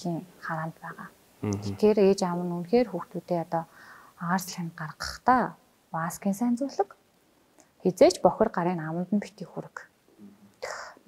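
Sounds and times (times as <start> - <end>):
woman speaking softly: 0.0 - 7.0.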